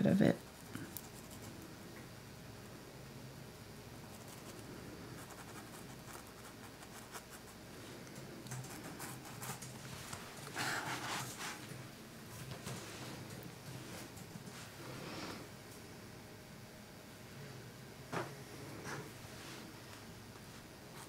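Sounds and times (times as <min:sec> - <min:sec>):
paintbrush scratching on canvas: 0:05.2 - 0:07.6.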